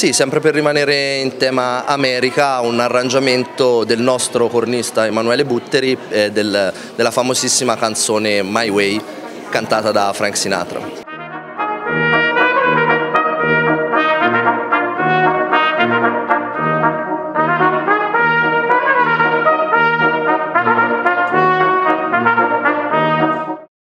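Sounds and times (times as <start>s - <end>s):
tuba bass notes: 10.8s - 23.7s
brass quintet playing: 11.0s - 23.7s.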